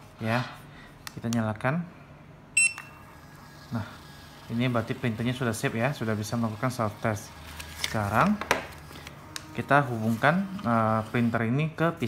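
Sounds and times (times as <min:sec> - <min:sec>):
printer high-pitched beep: 0:02.6 - 0:03.1
printer faint whine: 0:02.6 - 0:12.0.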